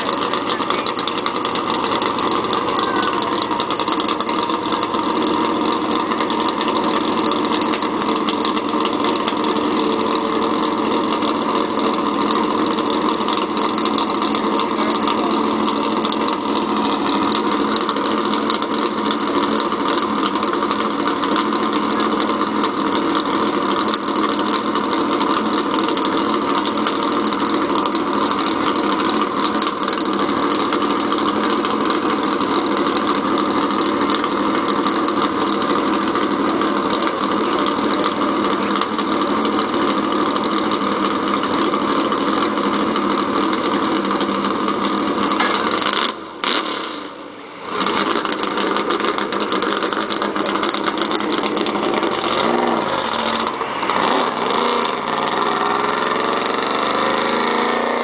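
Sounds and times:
race car engine idling: 0:00.0 - 0:58.0.

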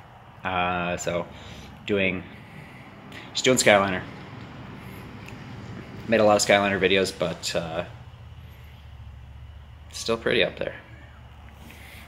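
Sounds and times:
low steady background hum: 0:00.0 - 0:12.0.

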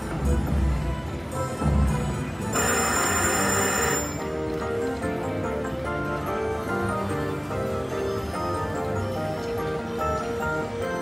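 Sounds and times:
slot machine game music: 0:01.2 - 0:11.0
bright ringing win sound: 0:02.6 - 0:04.3.

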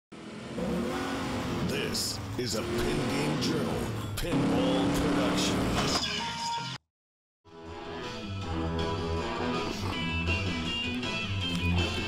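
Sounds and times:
car engine revving: 0:00.2 - 0:06.0.

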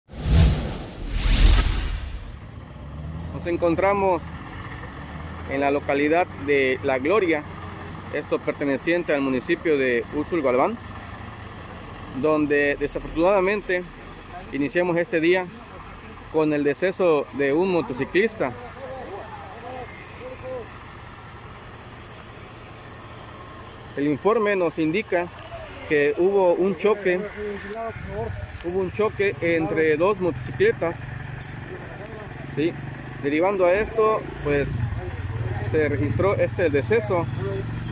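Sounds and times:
deep bass: 0:00.1 - 0:02.5
rushing whoosh: 0:00.1 - 0:02.5
vehicle engine idling: 0:02.2 - 0:37.9.

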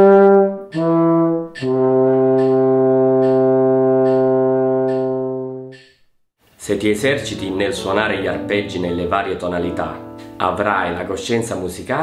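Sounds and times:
metronome clicking: 0:00.6 - 0:06.1.

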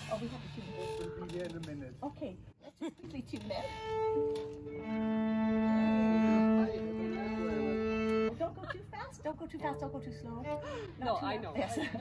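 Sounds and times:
violins and cello tuning: 0:03.6 - 0:08.5.

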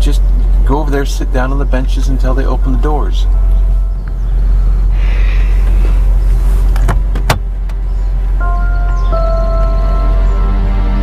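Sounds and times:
car cabin rumble: 0:00.0 - 0:11.0
car door clicks: 0:06.7 - 0:07.9
soft music with held tones: 0:08.4 - 0:11.0.

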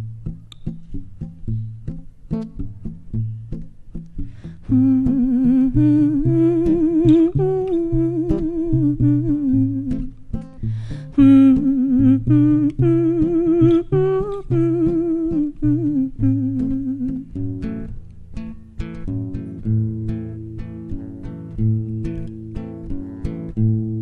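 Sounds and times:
classical guitar plucking: 0:00.0 - 0:24.0
woman humming a melody: 0:04.6 - 0:10.2, 0:11.1 - 0:17.4.

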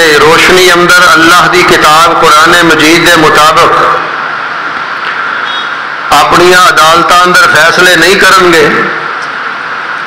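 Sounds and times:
microphone background hiss: 0:00.0 - 0:10.0.

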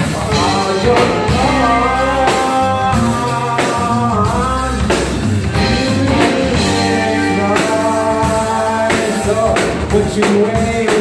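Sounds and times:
saxophone: 0:00.0 - 0:09.9
drum kit: 0:00.0 - 0:11.0
electric bass: 0:00.0 - 0:11.0.

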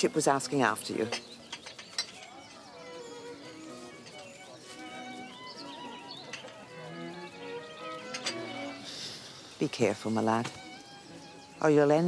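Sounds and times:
soft slow melody: 0:00.9 - 0:12.0.

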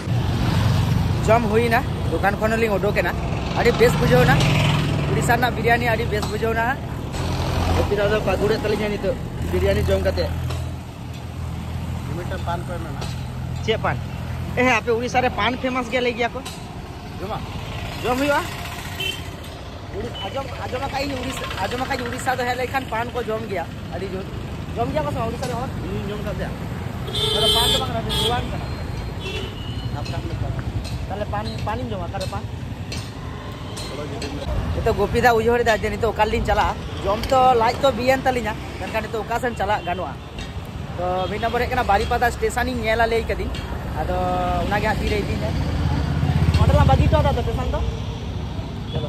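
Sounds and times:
street traffic rumbling: 0:00.0 - 0:49.0
vehicle horn toots: 0:27.0 - 0:28.5.

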